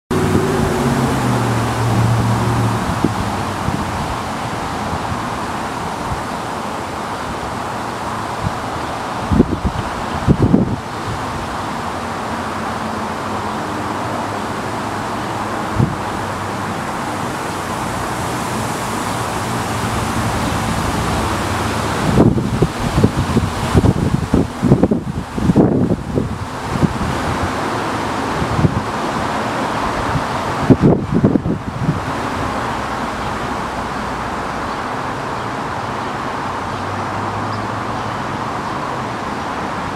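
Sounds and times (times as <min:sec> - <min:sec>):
wind buffeting microphone: 0:00.1 - 0:34.4
steady rushing noise: 0:00.1 - 0:39.9.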